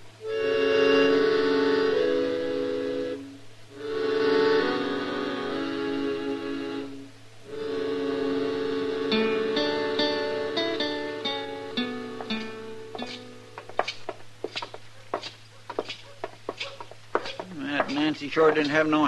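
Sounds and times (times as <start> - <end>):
held chords: 0.0 - 13.8, 17.5 - 19.0.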